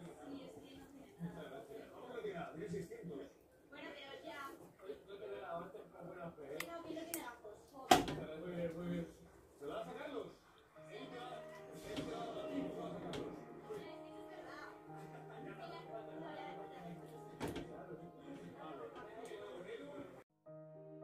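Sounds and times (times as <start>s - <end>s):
faint background voices: 0.0s - 20.3s
background music: 10.6s - 21.0s.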